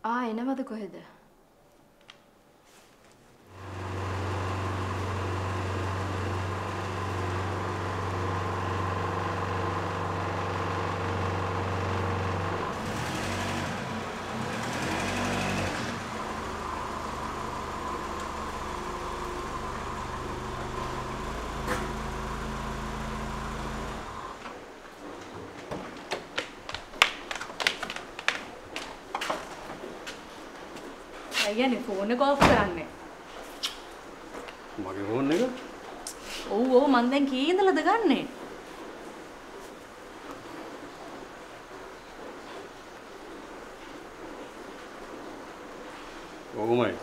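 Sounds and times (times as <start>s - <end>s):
car engine running: 3.6s - 24.4s
footsteps: 24.9s - 32.0s.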